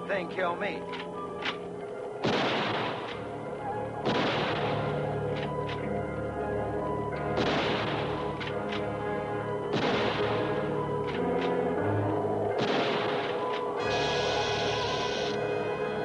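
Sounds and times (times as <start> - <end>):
sustained music: 0.0 - 16.0
echoing rifle shots: 2.2 - 3.3, 4.0 - 5.4, 7.2 - 8.8, 9.6 - 11.5, 12.5 - 14.4
low electronic hum: 3.0 - 12.6.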